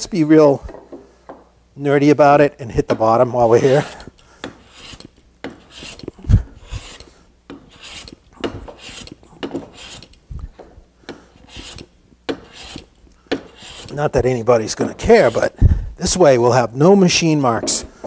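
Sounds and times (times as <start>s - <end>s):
hand plane cutting wood: 3.4s - 10.2s, 11.4s - 14.1s, 15.0s - 15.6s.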